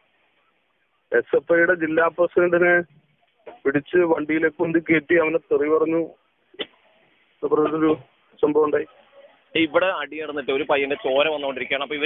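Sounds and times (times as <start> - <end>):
man talking: 1.1 - 6.2, 7.4 - 9.0, 9.6 - 12.0.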